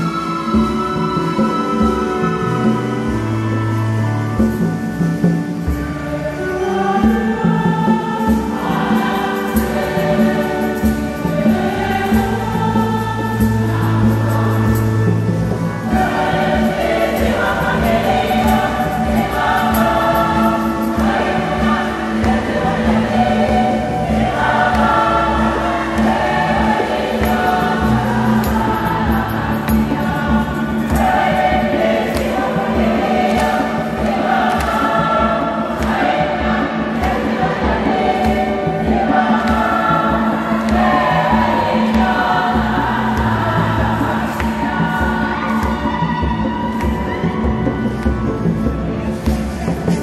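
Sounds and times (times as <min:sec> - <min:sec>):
women's choir singing a hymn: 0:00.0 - 0:50.0.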